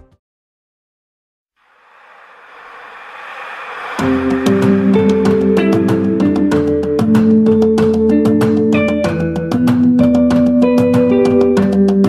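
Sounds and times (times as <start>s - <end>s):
hissing noise riser: 1.6s - 7.6s
plucked guitar: 4.0s - 12.0s.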